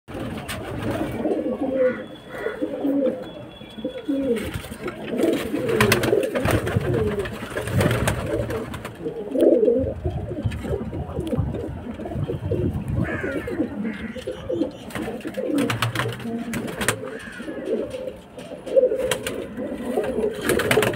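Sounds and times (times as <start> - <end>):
pigeons cooing: 0.1 - 20.9.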